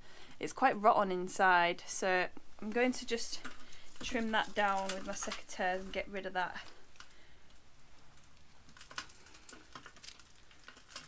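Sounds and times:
rustling of dried roots: 0.0 - 11.0.

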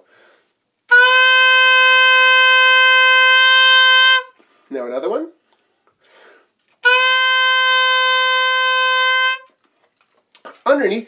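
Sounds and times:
oboe playing a long note: 0.9 - 4.4, 6.8 - 9.5.

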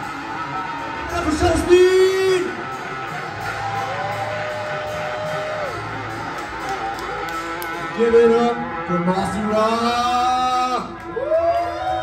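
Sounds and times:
band playing: 0.0 - 12.0.

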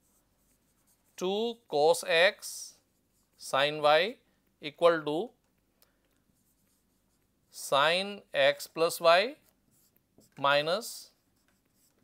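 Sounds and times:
marker writing on whiteboard: 0.0 - 1.2, 2.4 - 3.8, 6.3 - 7.6, 9.3 - 12.0.

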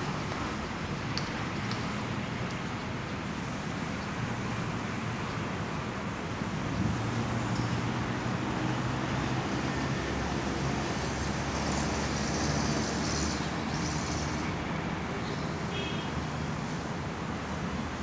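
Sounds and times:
road traffic hum: 0.0 - 18.0.

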